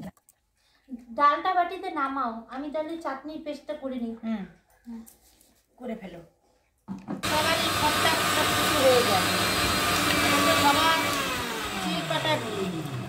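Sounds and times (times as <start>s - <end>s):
mixer grinder whining: 7.2s - 13.0s.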